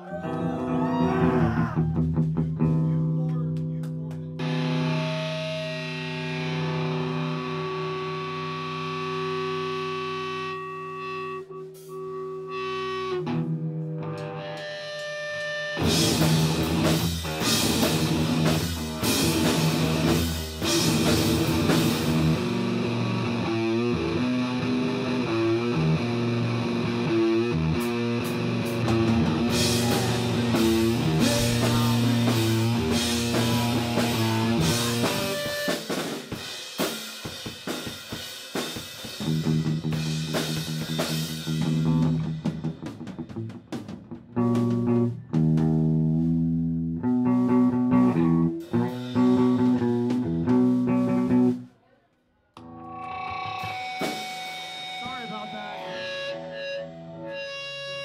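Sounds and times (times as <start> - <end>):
rock band playing: 0.0 - 51.7, 52.6 - 58.0
distorted electric guitar chords: 0.4 - 51.7, 52.6 - 58.0.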